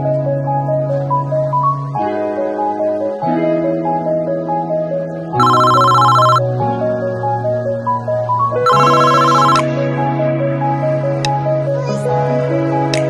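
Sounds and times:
electronic telephone ring: 5.4s - 6.4s, 8.6s - 9.7s.

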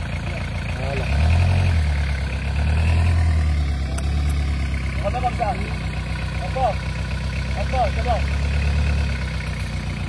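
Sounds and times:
truck engine running: 0.0s - 10.0s.

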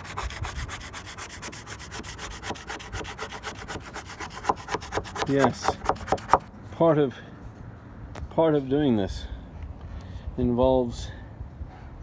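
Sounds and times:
plastic scraper scraping metal: 0.0s - 6.4s.

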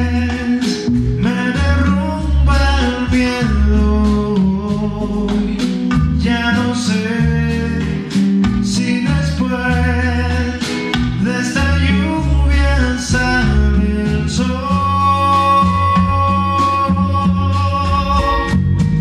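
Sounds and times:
bass line: 0.0s - 19.0s
electric guitar melody: 0.0s - 19.0s.

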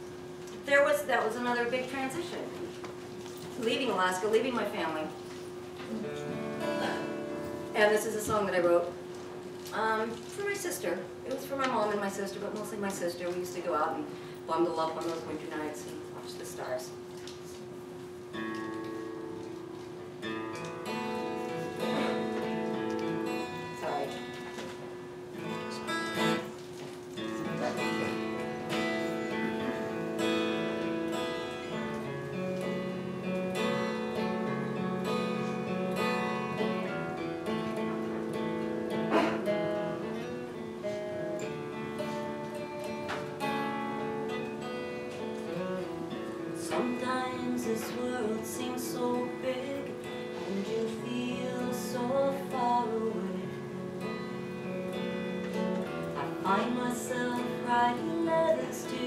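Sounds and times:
acoustic guitar playing: 0.0s - 13.7s, 18.1s - 59.0s.

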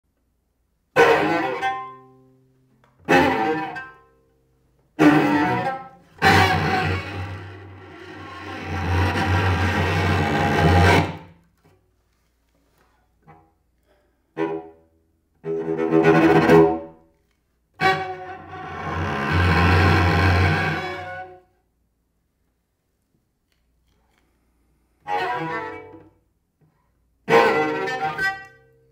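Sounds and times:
bowed cello: 1.0s - 2.1s, 3.0s - 4.1s, 5.0s - 11.4s, 14.3s - 17.0s, 17.8s - 21.5s, 25.0s - 26.3s, 27.2s - 28.6s.

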